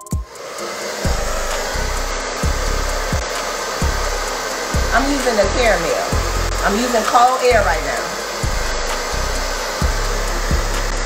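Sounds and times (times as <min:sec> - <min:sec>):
hair dryer blowing: 0:00.1 - 0:11.0
air buffeting microphone: 0:01.0 - 0:11.0.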